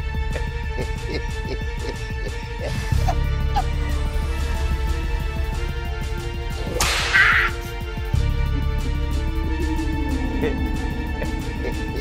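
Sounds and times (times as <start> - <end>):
whip crack: 6.7 - 7.5.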